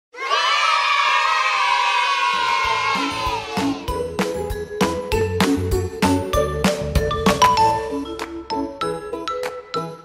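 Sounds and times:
crowd cheering: 0.1s - 3.9s.

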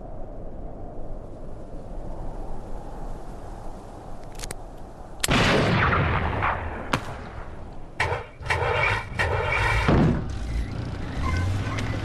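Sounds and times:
gunfire cracks: 5.2s - 10.2s
explosion blasts: 5.3s - 10.5s.

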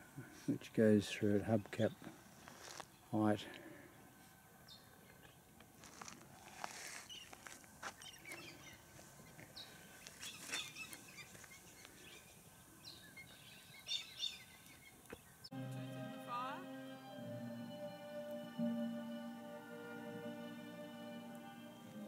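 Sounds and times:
bird chirps and calls: 9.6s - 15.5s.

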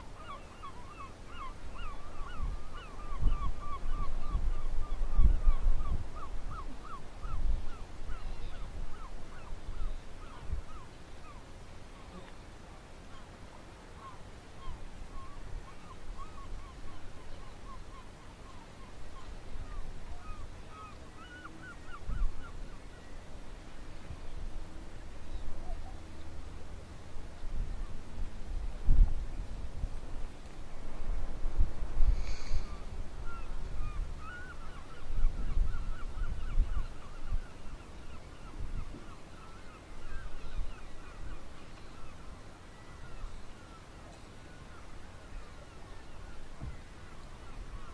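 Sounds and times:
wind and sea rumble: 0.0s - 47.9s
short bird calls: 14.0s - 23.2s, 32.1s - 47.9s.

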